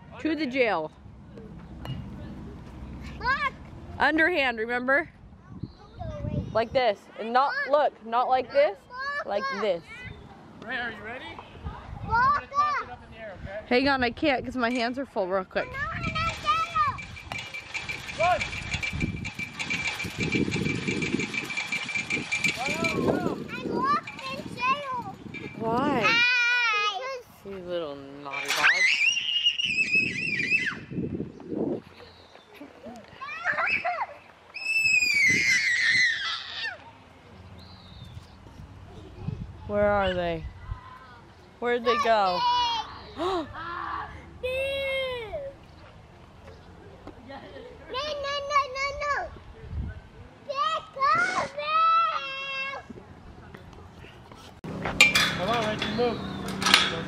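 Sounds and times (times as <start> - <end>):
faint children's voices: 5.3 - 10.6
chain-link fence rattling: 15.7 - 26.4, 28.0 - 30.0, 54.6 - 57.0
child squealing: 28.6 - 30.9, 33.2 - 36.8, 51.0 - 52.8
child calling: 50.5 - 52.8.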